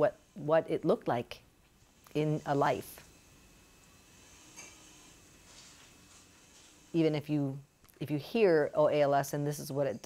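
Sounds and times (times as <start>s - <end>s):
soft hisses of air: 0.0s - 9.6s.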